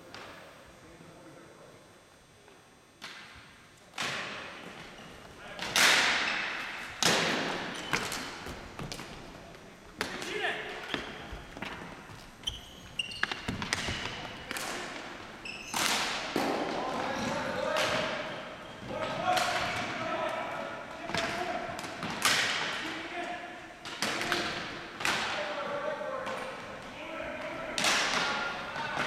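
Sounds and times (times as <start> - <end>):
short high squeaks: 12.4 - 14.2, 15.4 - 15.9
players shouting: 16.4 - 21.8.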